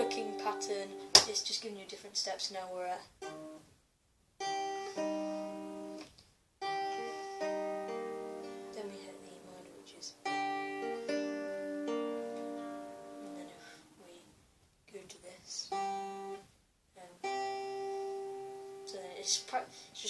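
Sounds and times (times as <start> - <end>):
fingerpicked acoustic guitar: 0.0 - 2.4, 3.1 - 3.7, 4.4 - 14.3, 15.0 - 16.6, 17.2 - 20.0.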